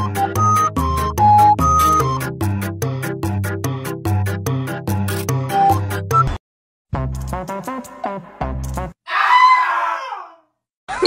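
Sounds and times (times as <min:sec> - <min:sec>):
shrill scream-like cry: 0:09.1 - 0:10.5.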